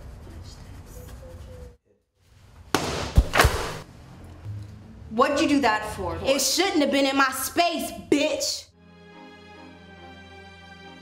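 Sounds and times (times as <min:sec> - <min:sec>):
crash of object knocked aside: 0:02.8 - 0:03.8.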